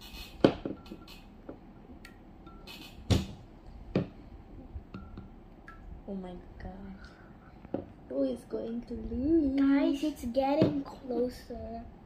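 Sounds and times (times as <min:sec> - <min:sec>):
dishes knocking on wooden table: 0:03.1 - 0:04.2.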